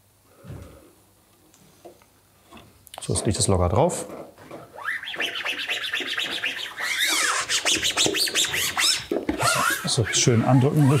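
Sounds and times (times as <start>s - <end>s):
squeegee squeaking on vinyl film: 3.1s - 11.0s.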